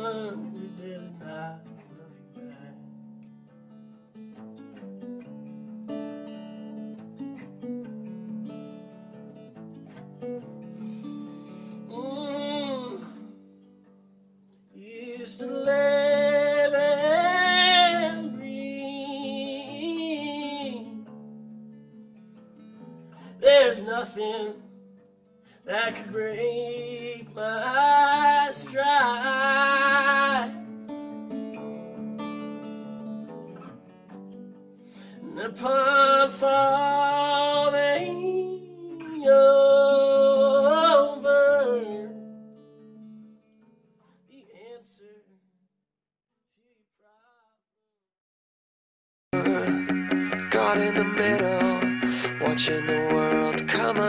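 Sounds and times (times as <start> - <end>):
man singing: 0.0 - 2.8, 11.9 - 13.3, 14.8 - 21.0, 23.4 - 24.7, 25.6 - 30.7, 35.2 - 42.2, 44.3 - 45.3, 49.4 - 54.0
acoustic guitar chords: 0.0 - 44.1, 49.3 - 54.0.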